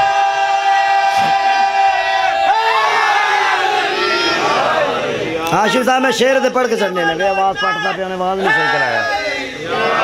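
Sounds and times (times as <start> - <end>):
crowd voices shouting: 0.0 - 10.0.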